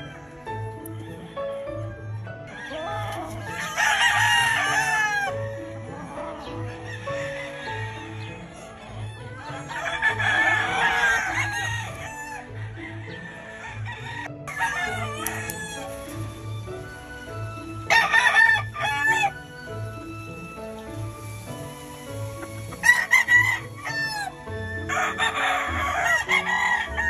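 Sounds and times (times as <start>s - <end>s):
background music with low beat: 0.0s - 27.0s
roosters crowing: 0.0s - 27.0s.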